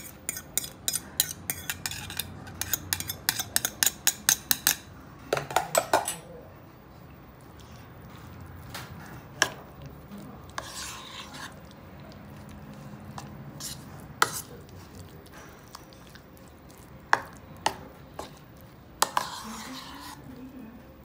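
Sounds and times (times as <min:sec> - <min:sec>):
utensil scraping and squishing mixture: 0:00.0 - 0:21.0.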